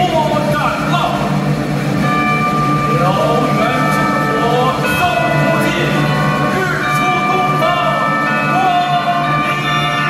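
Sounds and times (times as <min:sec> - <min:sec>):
traditional orchestra sustained chord: 0:02.0 - 0:10.0.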